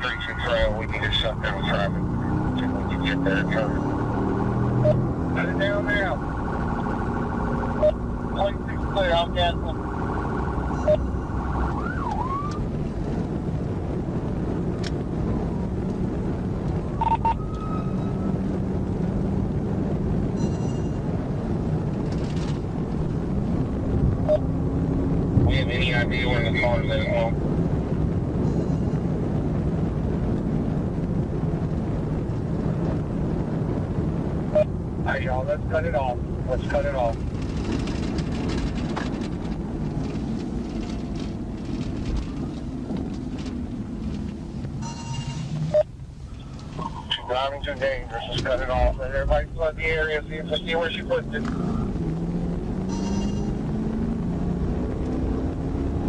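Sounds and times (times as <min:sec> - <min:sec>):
engine and road noise: 0:00.0 - 0:56.0
warbling electronic siren bursts: 0:04.7 - 0:12.7, 0:16.9 - 0:18.5.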